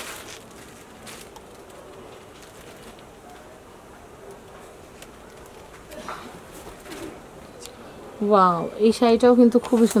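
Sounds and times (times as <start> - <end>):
cloth rustling: 0.0 - 1.6.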